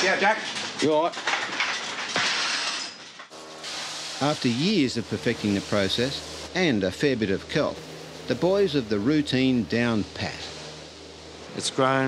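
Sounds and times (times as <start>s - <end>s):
dryer blowing air hiss: 3.4s - 6.6s, 7.5s - 12.0s.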